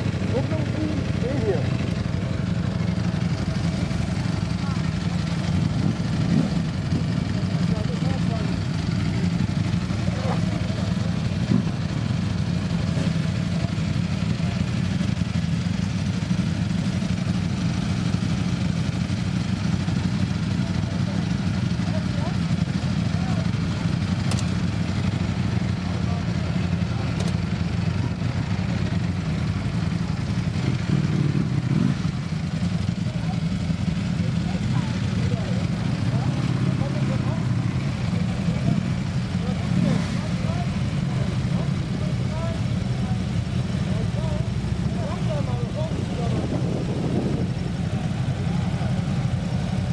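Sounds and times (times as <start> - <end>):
faint crowd chatter: 0.0 - 49.9
motorcycles idling: 0.0 - 49.9.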